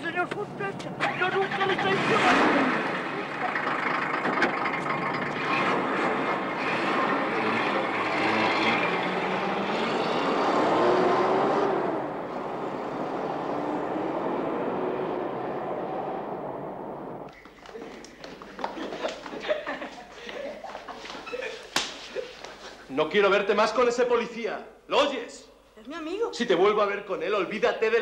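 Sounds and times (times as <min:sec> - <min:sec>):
car engine and tyres driving off: 0:00.2 - 0:17.3.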